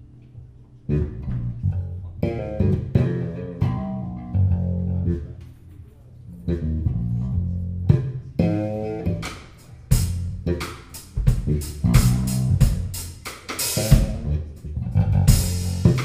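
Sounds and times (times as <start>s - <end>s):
plucked electric bass guitar: 0.8s - 5.6s, 6.2s - 13.2s, 13.8s - 16.0s
live band music: 6.5s - 16.0s.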